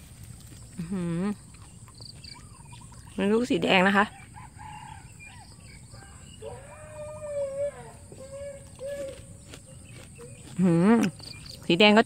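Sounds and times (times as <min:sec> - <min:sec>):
woman speaking: 0:00.8 - 0:01.4, 0:03.2 - 0:04.2, 0:10.6 - 0:12.0.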